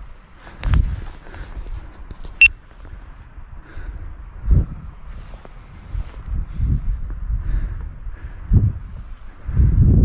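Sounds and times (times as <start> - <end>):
wind buffeting microphone: 0.0 - 2.0, 2.7 - 10.0.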